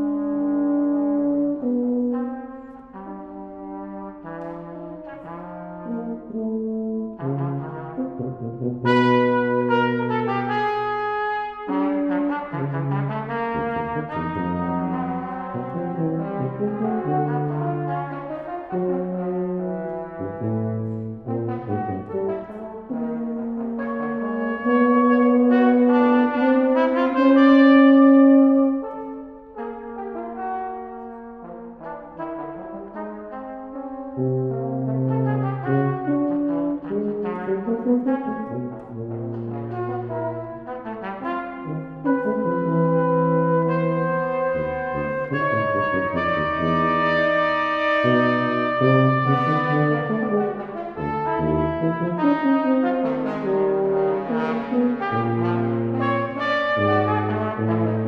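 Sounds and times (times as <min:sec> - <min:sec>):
french horn: 0:00.0 - 0:58.0
trumpet: 0:00.0 - 0:58.0
tuba: 0:00.0 - 0:58.0.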